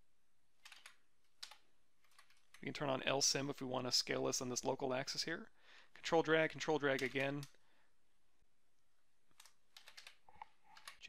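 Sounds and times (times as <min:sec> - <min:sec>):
computer keys clicking: 0:00.6 - 0:02.7, 0:06.8 - 0:07.6, 0:09.3 - 0:11.0.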